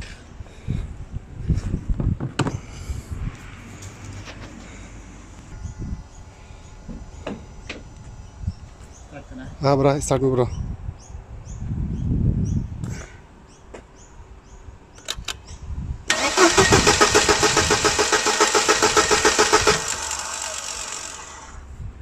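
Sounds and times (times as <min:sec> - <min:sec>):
car engine cranking on starter: 0:16.1 - 0:21.7.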